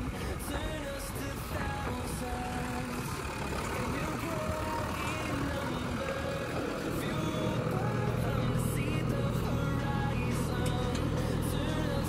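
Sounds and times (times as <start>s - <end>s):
diesel engine rumbling: 0.0s - 12.0s.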